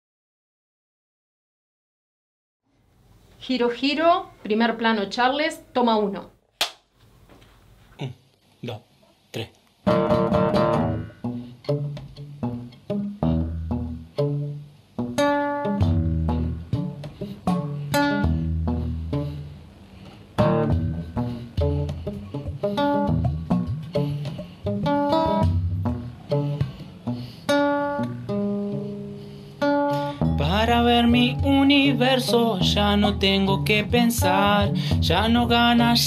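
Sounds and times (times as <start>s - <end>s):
fingerpicked acoustic guitar: 9.8s - 36.0s.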